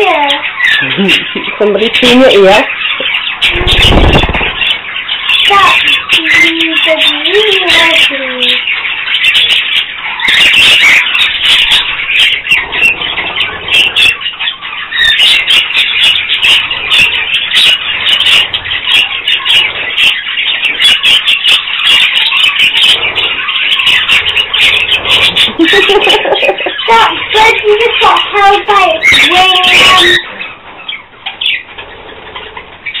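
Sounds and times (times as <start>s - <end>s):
budgerigars chattering: 0.0s - 33.0s.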